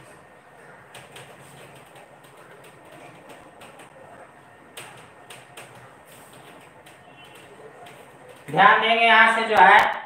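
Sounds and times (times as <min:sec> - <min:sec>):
eraser wiping whiteboard: 0:06.0 - 0:08.2.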